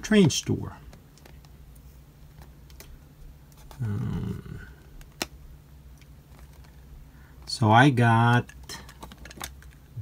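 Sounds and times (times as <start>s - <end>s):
low steady hum: 0.0s - 10.0s
plastic case clicking: 8.3s - 9.8s.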